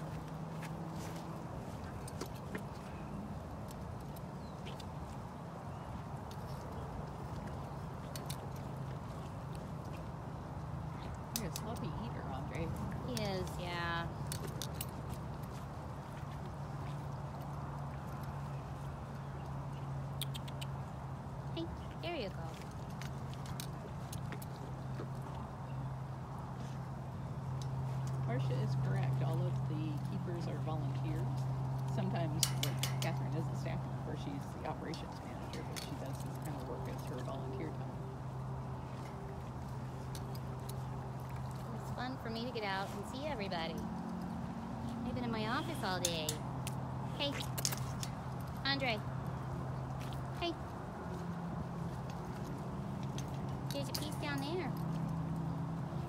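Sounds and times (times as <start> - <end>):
tiger chewing and licking: 34.4 - 45.0.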